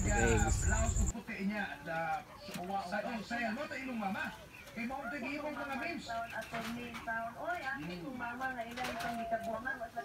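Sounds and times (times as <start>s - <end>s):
indistinct voices talking: 0.0s - 1.1s.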